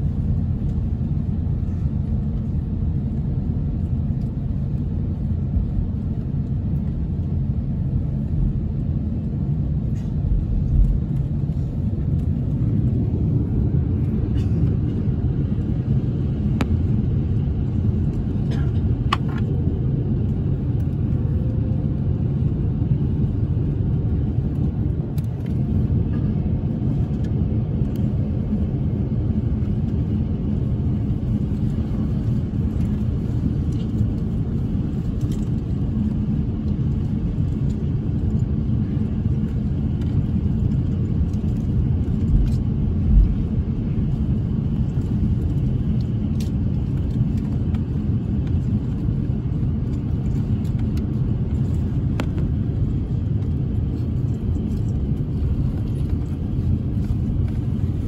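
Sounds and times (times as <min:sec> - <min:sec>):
airliner cabin rumble while taxiing: 0:00.0 - 0:58.0.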